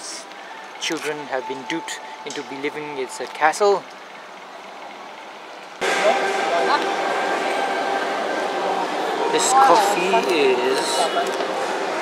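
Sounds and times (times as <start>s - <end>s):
indoor hubbub: 0.0s - 12.0s
outdoor background noise: 0.0s - 12.0s.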